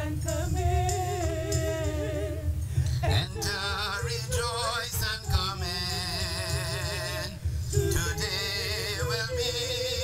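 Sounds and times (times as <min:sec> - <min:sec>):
person singing a hymn: 0:00.0 - 0:10.0
steady low rumble: 0:00.0 - 0:10.0.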